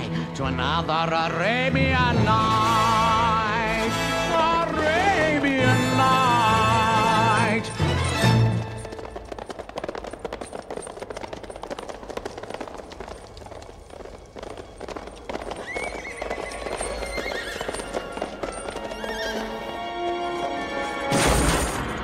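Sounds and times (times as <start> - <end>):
orchestral film music: 0.0 - 9.3, 15.5 - 22.0
hooves clattering on stone: 3.2 - 21.7
horse whinnying: 15.3 - 20.2.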